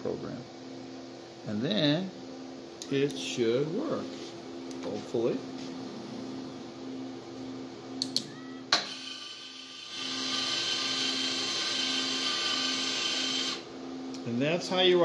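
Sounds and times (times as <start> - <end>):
conveyor motor whine: 0.0 - 15.0
low pulsing hum: 3.6 - 8.7.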